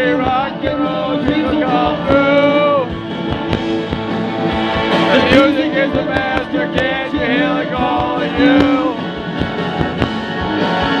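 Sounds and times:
man singing: 0:00.0 - 0:02.9, 0:05.0 - 0:09.1
live rock band: 0:00.0 - 0:11.0.

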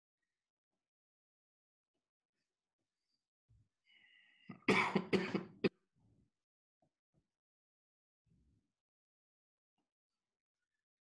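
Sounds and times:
man coughing: 0:04.6 - 0:05.7.

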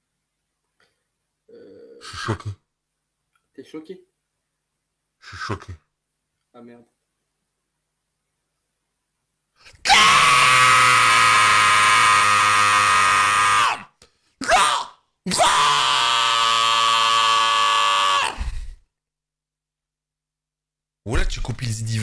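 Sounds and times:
man screaming in rage: 0:09.8 - 0:18.6.

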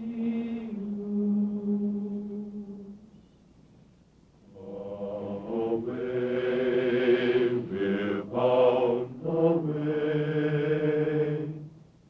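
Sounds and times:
voices singing in harmony: 0:00.0 - 0:03.1, 0:04.5 - 0:11.8.

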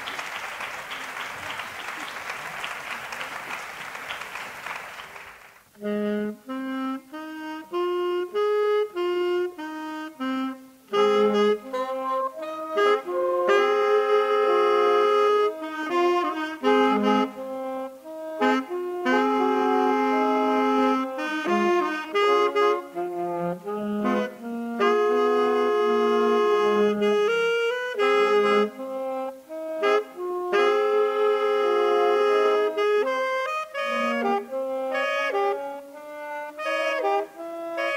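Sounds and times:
saxophone quartet playing blues: 0:00.0 - 0:05.0, 0:05.8 - 0:37.9.

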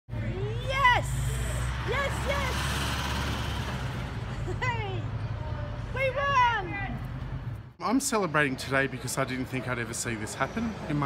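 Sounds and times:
vehicle engine rumbling: 0:00.1 - 0:07.8.

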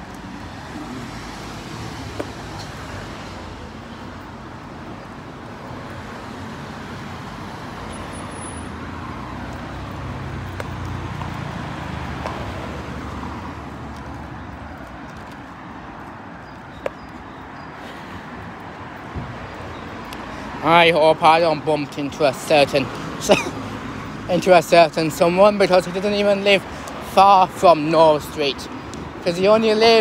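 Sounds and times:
road traffic rumbling: 0:00.0 - 0:30.0.

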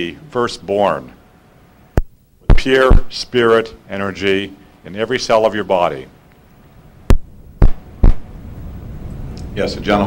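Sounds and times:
low steady hum: 0:00.0 - 0:10.0
microphone handling thumps: 0:02.0 - 0:03.2, 0:07.1 - 0:08.3.

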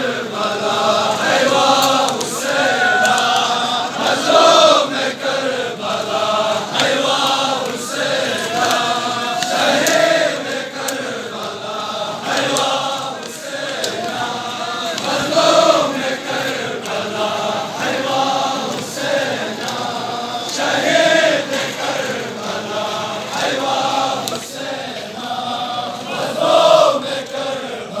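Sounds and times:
crowd of men chanting: 0:00.0 - 0:28.0.

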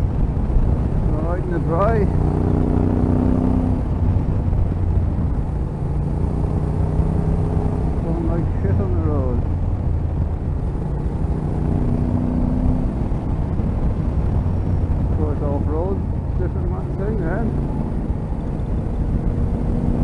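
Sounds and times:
motorcycle engine running: 0:00.0 - 0:20.0.

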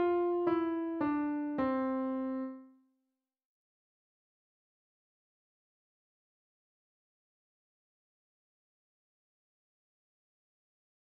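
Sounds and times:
piano descending scale: 0:00.0 - 0:02.6.

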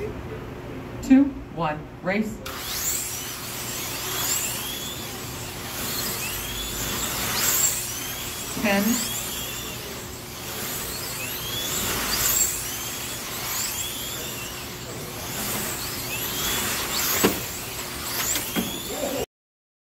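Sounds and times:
slot car motors whining: 0:02.4 - 0:19.3.

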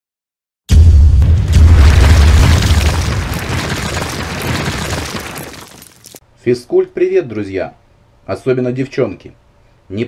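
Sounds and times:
deep rumbling boom: 0:00.7 - 0:05.5
crackling tumbling rubble: 0:01.5 - 0:06.2.

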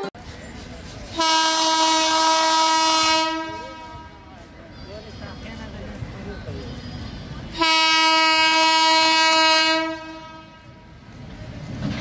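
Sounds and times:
train rumble: 0:00.0 - 0:12.0
locomotive air horn: 0:01.2 - 0:04.3, 0:07.6 - 0:10.9.

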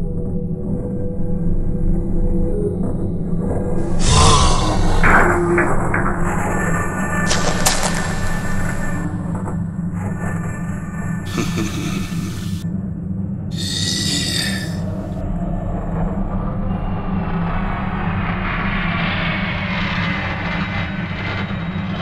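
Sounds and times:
low droning music: 0:00.0 - 0:13.5
heavy rumble: 0:03.7 - 0:12.6
noisy swells: 0:06.8 - 0:09.6.

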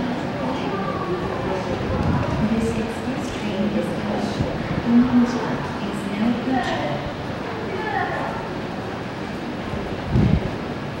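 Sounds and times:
railway platform background noise: 0:00.0 - 0:11.0.

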